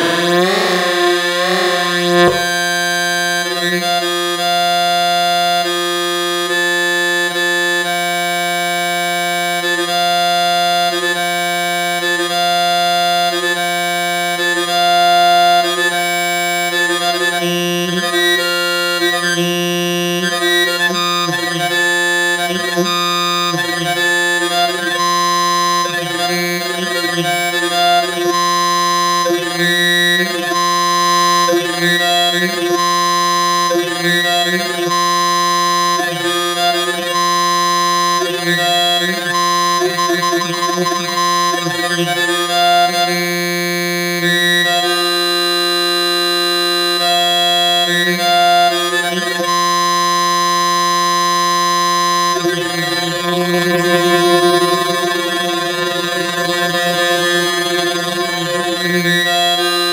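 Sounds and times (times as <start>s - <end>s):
reedy synthesizer drone with flanger: 0.0s - 2.9s.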